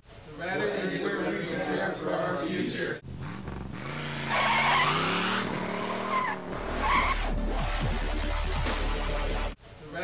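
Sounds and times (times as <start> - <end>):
car engine revving: 3.0 - 9.5
tire squeal: 3.2 - 7.6.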